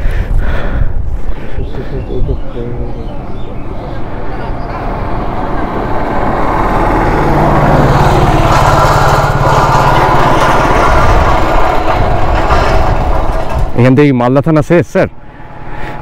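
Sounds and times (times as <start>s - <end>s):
vehicle engine running: 1.7s - 13.9s.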